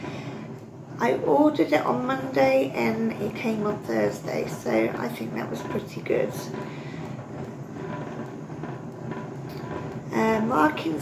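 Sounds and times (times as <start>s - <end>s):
yarn winder mechanical whirr: 0.0s - 11.0s.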